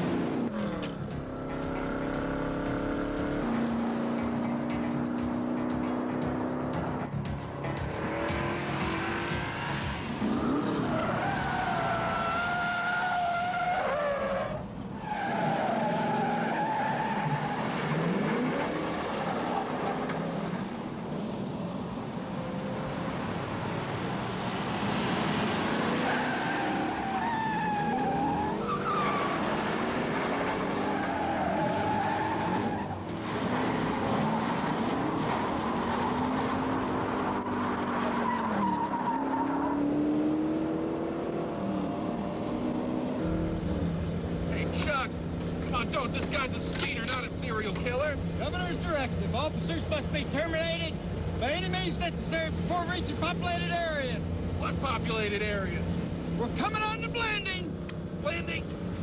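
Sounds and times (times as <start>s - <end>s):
car engines running hard: 0.0s - 13.5s, 14.2s - 59.0s
tire squeals: 9.0s - 20.5s, 25.0s - 40.4s.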